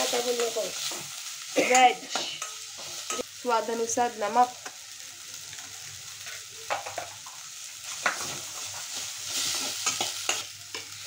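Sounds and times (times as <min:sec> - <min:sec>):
steel spoon scraping a pan: 0:00.0 - 0:03.3, 0:07.8 - 0:11.0
vegetables sizzling in oil: 0:00.0 - 0:11.0.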